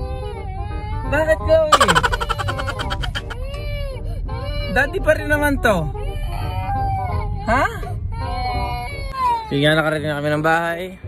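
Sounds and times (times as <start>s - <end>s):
girl crying and wailing: 1.7s - 3.6s.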